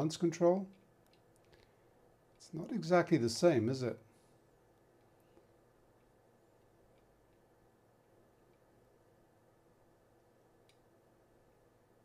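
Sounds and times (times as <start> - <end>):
faint steady hum: 0.0 - 12.0
faint clicks: 0.7 - 2.5, 10.2 - 10.9.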